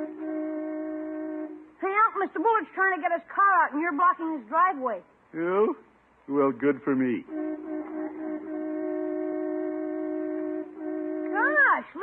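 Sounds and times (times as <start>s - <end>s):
car horn honking: 7.3s - 11.7s.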